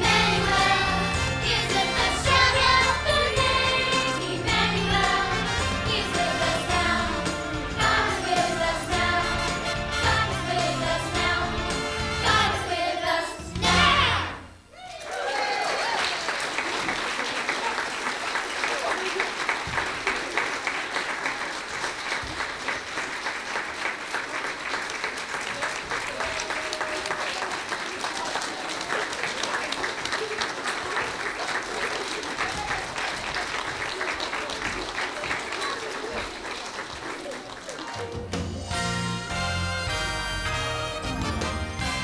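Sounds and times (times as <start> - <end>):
congregation applauding: 14.8 - 38.6.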